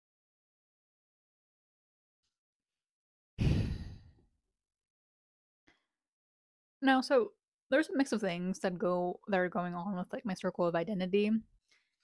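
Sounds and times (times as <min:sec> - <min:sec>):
woman sighing: 0:03.4 - 0:04.1.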